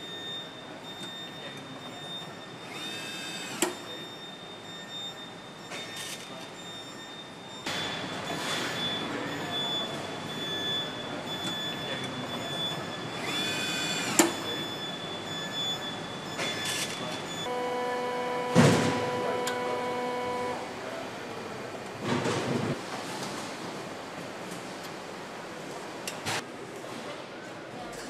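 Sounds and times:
machinery din with high tone: 7.0s - 22.8s
low humming drone: 17.4s - 21.8s.

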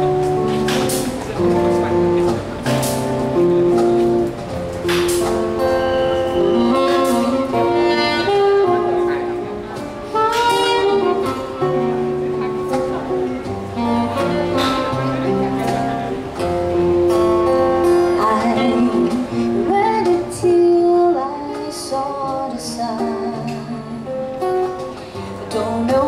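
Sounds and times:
low bass notes: 0.0s - 19.8s
saxophone melody: 0.0s - 20.0s
strummed acoustic guitar: 0.0s - 26.0s.

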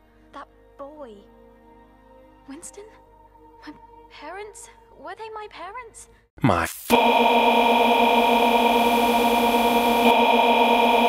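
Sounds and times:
loud electronic buzz: 6.8s - 11.0s.

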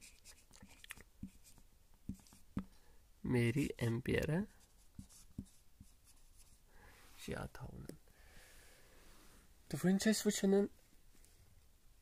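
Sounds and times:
marker scratching on whiteboard: 0.0s - 2.7s, 4.4s - 6.6s.

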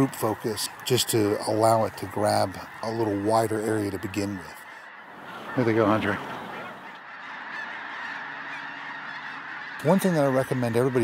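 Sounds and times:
flock of geese honking: 0.0s - 11.0s.

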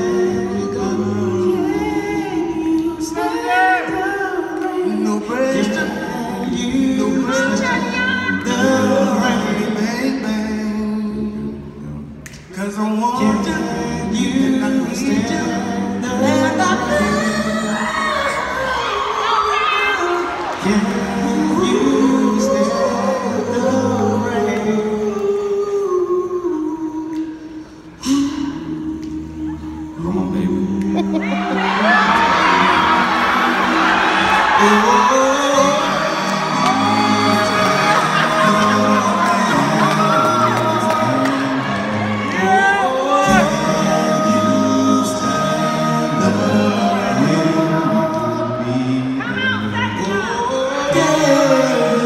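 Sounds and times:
men singing a cappella harmony: 0.0s - 19.2s, 20.0s - 52.0s
audience whooping and cheering: 17.8s - 21.7s, 31.2s - 43.5s.

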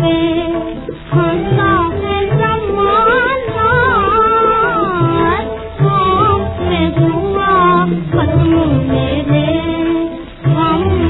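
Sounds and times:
woman singing on old record: 0.0s - 11.0s.

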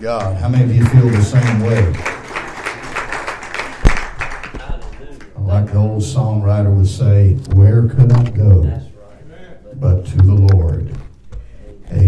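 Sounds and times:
congregation applauding: 0.0s - 5.8s.

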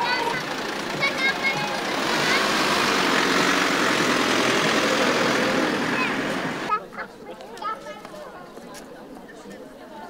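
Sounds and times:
van engine running: 0.0s - 6.7s.

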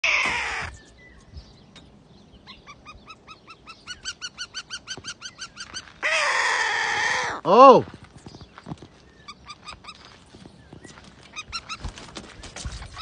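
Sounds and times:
hawks calling: 0.0s - 7.5s, 8.4s - 13.0s.

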